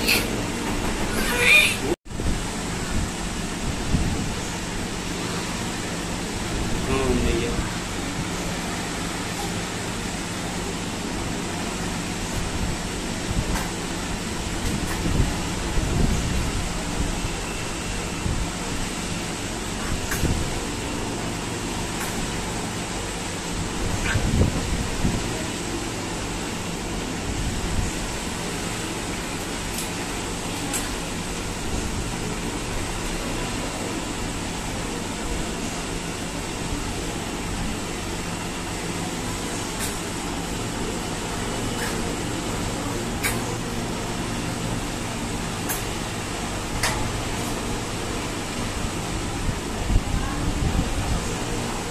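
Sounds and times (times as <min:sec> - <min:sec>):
machinery hum and hiss: 0:00.0 - 0:51.9.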